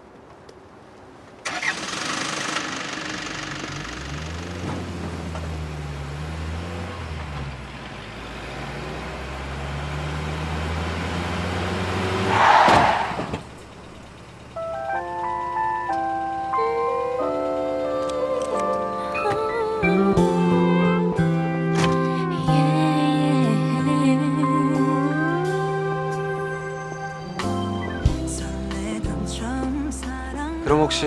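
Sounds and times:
jeep engine running: 1.3s - 31.0s.

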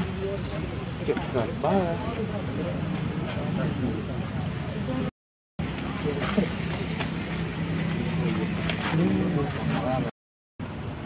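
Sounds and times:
indistinct voices talking: 0.0s - 10.1s.

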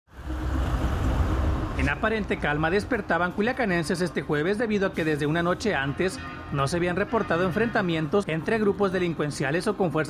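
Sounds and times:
passing vehicles engine rumble: 0.1s - 4.1s
man's voice: 1.8s - 10.0s.

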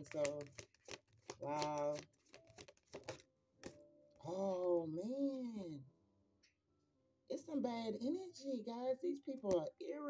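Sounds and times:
cards shuffled softly: 0.0s - 3.8s.

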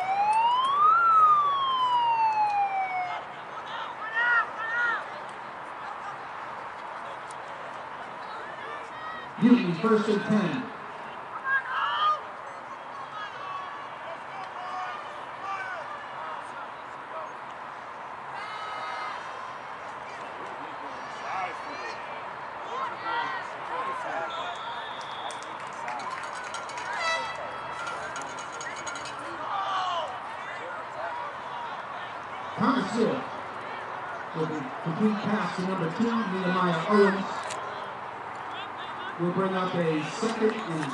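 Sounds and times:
players shouting: 8.4s - 12.3s, 12.9s - 16.8s, 26.7s - 40.9s
referee's whistle: 24.3s - 25.5s.

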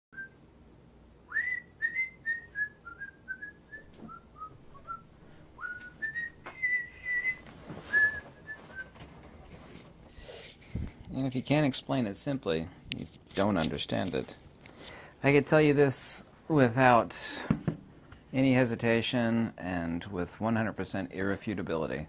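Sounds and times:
person whistling a tune: 1.3s - 5.0s, 5.6s - 8.9s
knocks and rustles of movement: 3.8s - 11.2s.

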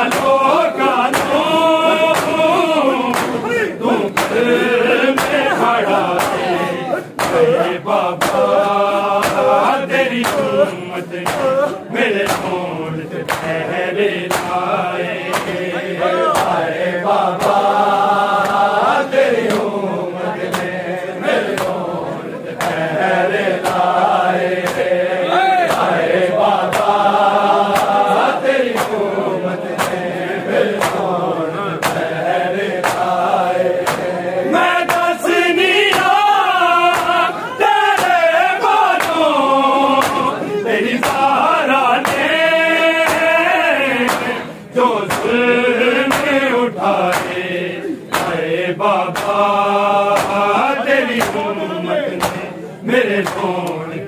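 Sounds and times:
man singing lament: 0.0s - 18.8s, 33.0s - 54.0s
hands slapping chests: 0.0s - 19.8s, 20.4s - 20.8s, 21.4s - 51.5s, 52.1s - 53.9s
crowd of men chanting: 0.0s - 54.0s.

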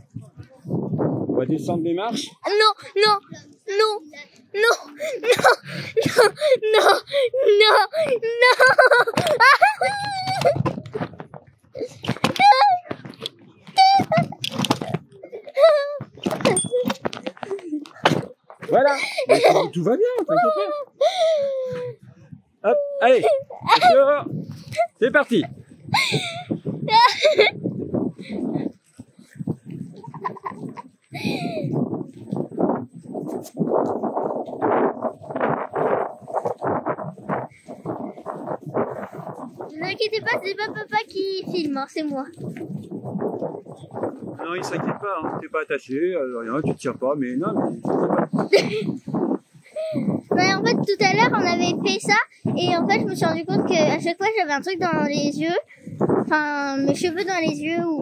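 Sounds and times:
wind buffeting microphone: 0.0s - 58.0s
girl squealing: 4.6s - 10.7s, 11.8s - 12.9s, 13.8s - 14.3s, 15.3s - 16.9s, 20.3s - 22.0s, 26.0s - 27.6s
scooter wheels rumbling on concrete: 4.9s - 19.7s, 26.8s - 44.3s.

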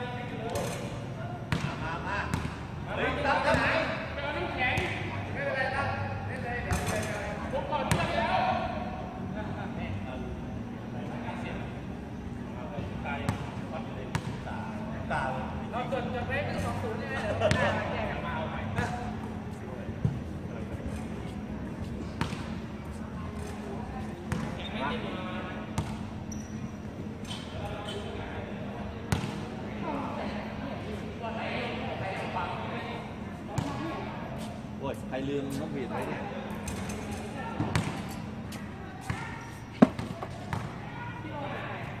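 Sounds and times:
basketball bouncing on hard court: 22.2s - 22.5s, 39.8s - 40.7s
basketball bouncing on concrete: 39.0s - 40.7s.

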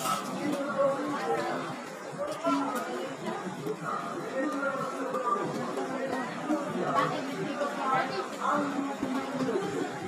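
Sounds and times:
people talking and chattering: 0.0s - 10.0s.

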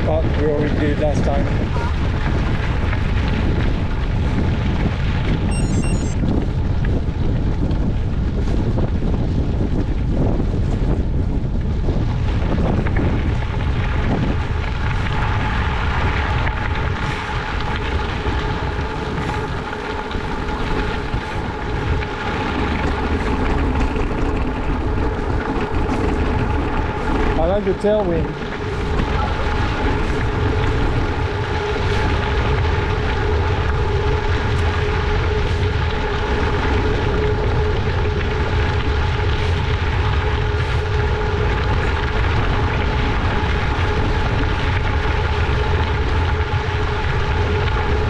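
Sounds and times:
bicycle tyres rolling on gravel: 0.0s - 48.0s
wind on microphone: 0.0s - 48.0s
steady hum: 5.0s - 6.5s, 13.1s - 48.0s.

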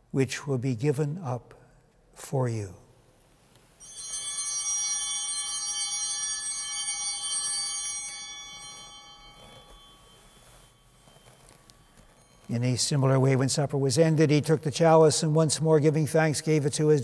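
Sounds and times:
altar bell ringing: 3.8s - 14.9s.

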